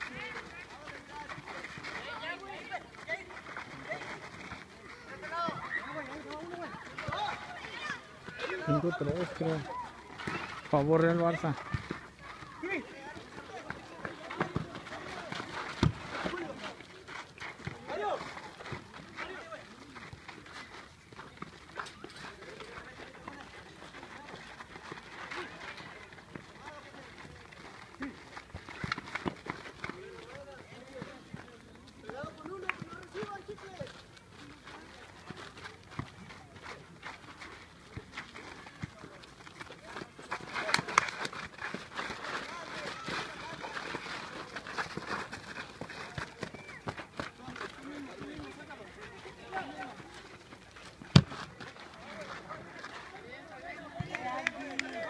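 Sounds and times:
ball being kicked: 13.6 - 16.4, 51.0 - 51.6.

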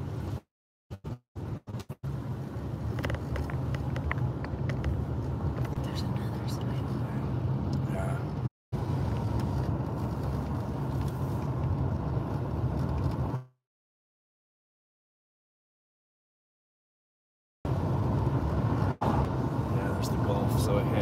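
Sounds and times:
car cabin road rumble: 0.0 - 13.5, 17.7 - 21.0.

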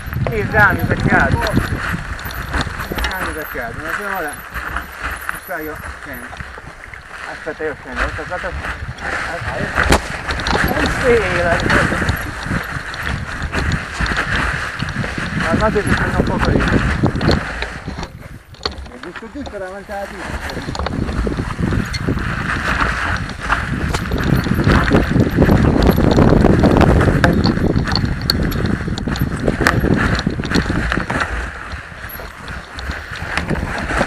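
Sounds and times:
mountain bike rattling over rocks: 0.0 - 34.0.

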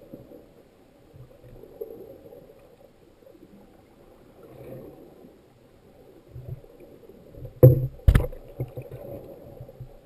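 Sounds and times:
low wash of water: 0.0 - 10.0
sharp underwater knocks: 7.6 - 8.7.

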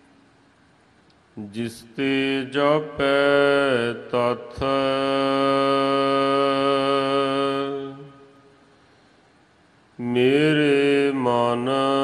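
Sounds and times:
person chanting melodically: 1.4 - 8.5, 10.0 - 12.0.

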